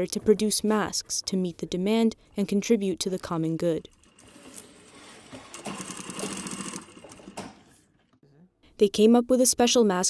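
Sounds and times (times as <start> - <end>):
sewing machine stitching: 4.0 - 7.8.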